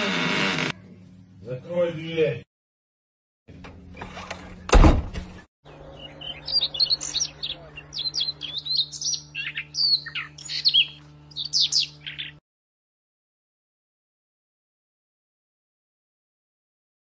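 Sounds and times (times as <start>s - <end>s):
songbirds chirping: 4.0s - 12.4s.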